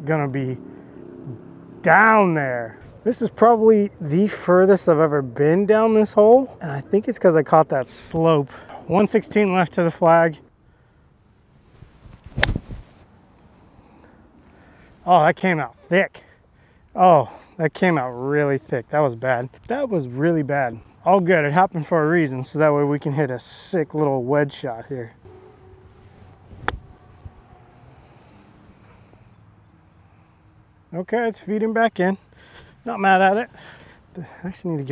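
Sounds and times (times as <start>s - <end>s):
golf club striking ball: 12.3s - 12.8s, 25.3s - 27.6s.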